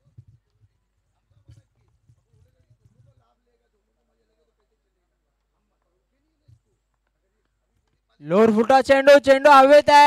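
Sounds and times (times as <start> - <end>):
faint distant voices: 0.0 - 8.2.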